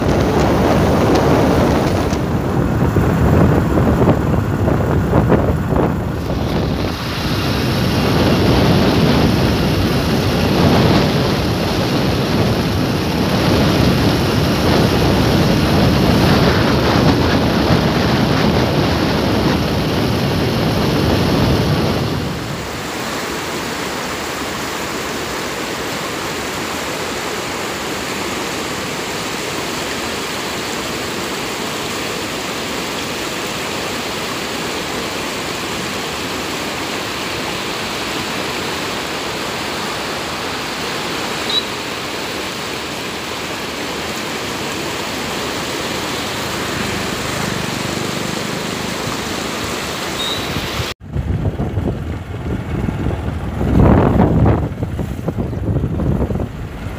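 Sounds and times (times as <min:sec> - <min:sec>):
wind rushing on microphone: 0:00.0 - 0:26.4, 0:28.1 - 0:56.9
river water rushing over boulders: 0:00.0 - 0:56.9.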